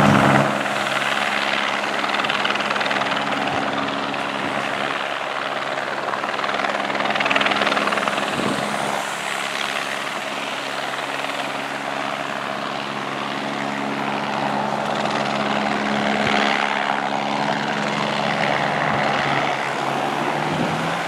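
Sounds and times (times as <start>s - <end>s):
cars driving past: 0.0s - 4.9s, 7.3s - 21.0s
helicopter hovering: 0.0s - 21.0s.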